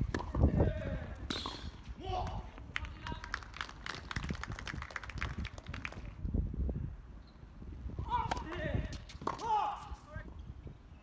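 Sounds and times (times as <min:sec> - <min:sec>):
low wind rumble: 0:00.0 - 0:11.0.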